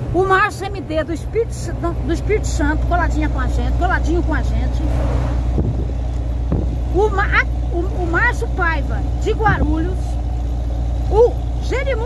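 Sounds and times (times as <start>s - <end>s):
truck engine droning: 0.0s - 12.0s
passing truck whoosh: 1.7s - 11.6s.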